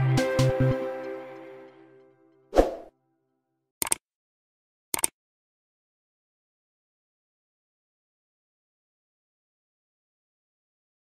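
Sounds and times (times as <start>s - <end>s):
mouse click sound effects: 3.8s - 4.0s.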